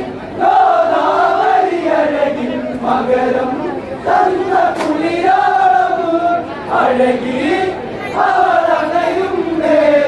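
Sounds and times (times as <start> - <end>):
men singing in unison: 0.4 - 10.0.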